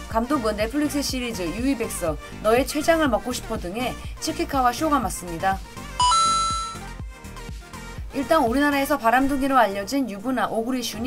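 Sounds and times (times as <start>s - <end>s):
background music with steady beat: 0.0s - 11.0s
bright two-note chime: 6.0s - 6.9s.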